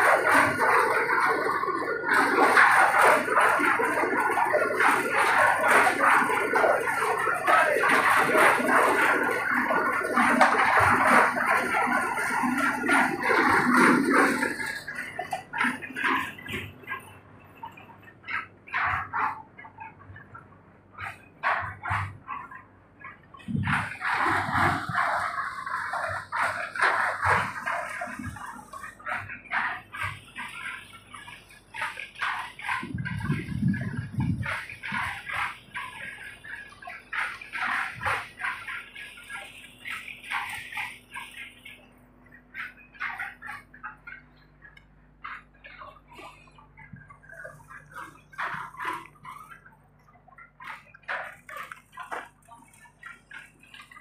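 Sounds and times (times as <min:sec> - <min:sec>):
deeper animal sounds: 0:06.4 - 0:54.0.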